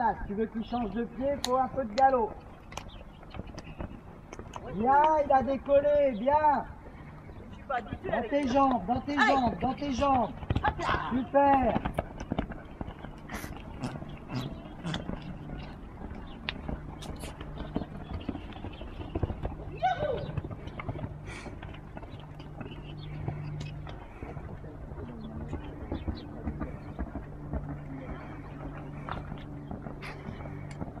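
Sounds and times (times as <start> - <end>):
hoofbeats on sand: 0.4 - 31.0
faint voices: 22.7 - 31.0.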